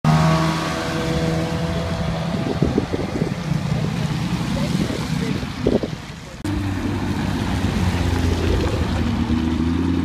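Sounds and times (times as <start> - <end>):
wind buffeting microphone: 1.9 - 6.1
car engine pulling away: 6.5 - 10.0.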